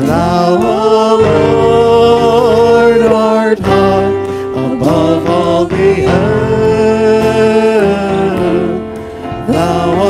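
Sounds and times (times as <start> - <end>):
acoustic guitar: 0.0 - 10.0
band accompaniment: 0.0 - 10.0.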